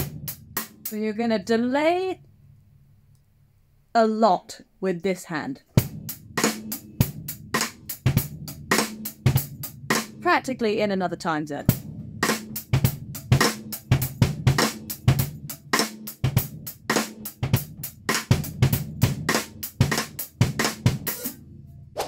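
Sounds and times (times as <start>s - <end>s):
drum kit groove: 0.0s - 1.1s, 5.7s - 21.4s.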